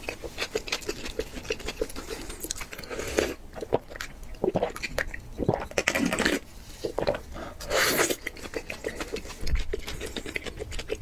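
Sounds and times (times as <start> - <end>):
chewing: 0.0 - 11.0
wet mouth sounds: 0.0 - 11.0.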